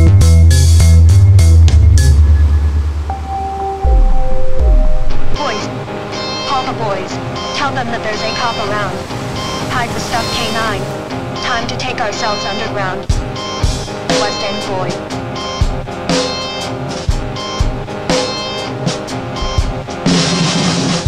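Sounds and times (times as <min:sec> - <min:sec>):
rock band playing: 0:00.0 - 0:21.0
low thumps: 0:00.9 - 0:05.4.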